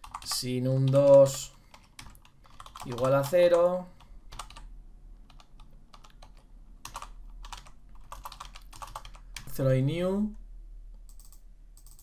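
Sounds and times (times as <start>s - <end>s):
keyboard typing clicks: 0.0s - 4.7s, 5.3s - 9.5s, 11.0s - 12.0s.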